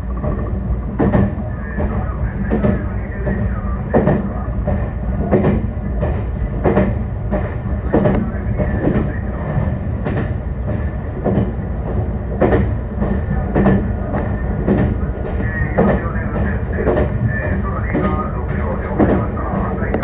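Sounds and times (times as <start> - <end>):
electric train running hum: 0.0 - 20.0.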